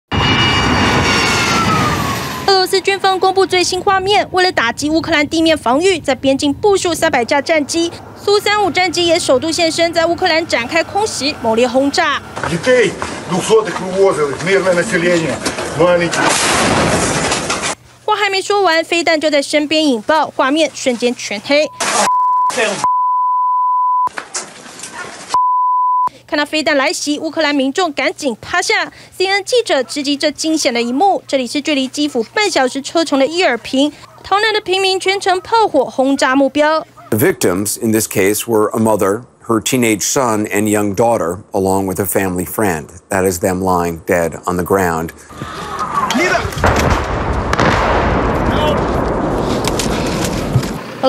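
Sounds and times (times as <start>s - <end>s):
fighter jet taking off: 0.1s - 3.3s
censor bleep tone: 21.6s - 24.1s, 25.4s - 26.1s.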